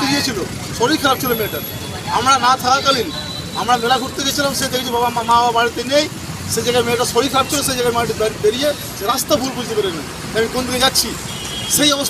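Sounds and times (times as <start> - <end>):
man speaking: 0.0 - 12.0
street traffic hum: 0.0 - 12.0.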